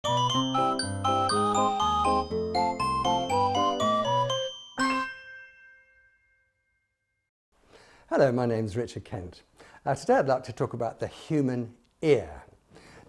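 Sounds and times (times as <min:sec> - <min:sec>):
upbeat intro jingle: 0:00.0 - 0:06.1
struck chord ringing: 0:00.0 - 0:06.4.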